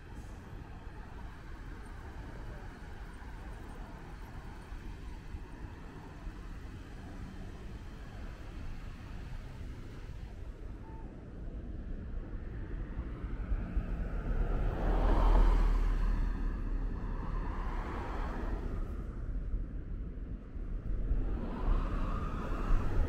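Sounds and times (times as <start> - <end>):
low rumble of street traffic: 0.0 - 23.0
car passing close by: 13.8 - 19.1.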